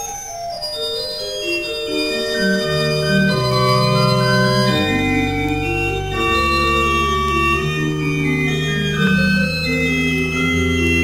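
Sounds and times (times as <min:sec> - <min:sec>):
pipe organ sustained notes: 0:00.1 - 0:11.0.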